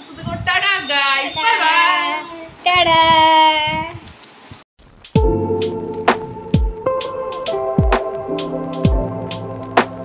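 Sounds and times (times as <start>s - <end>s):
child calling out sing-song: 1.4s - 4.0s.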